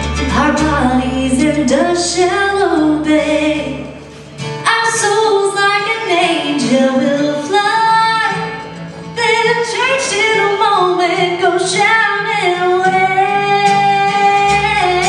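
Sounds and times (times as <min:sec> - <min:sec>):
woman singing a hymn: 0:00.3 - 0:04.0, 0:04.6 - 0:08.5, 0:09.2 - 0:15.0.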